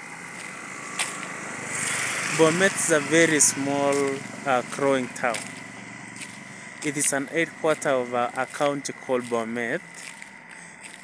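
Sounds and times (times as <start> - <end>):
street background hiss: 0.0 - 11.0.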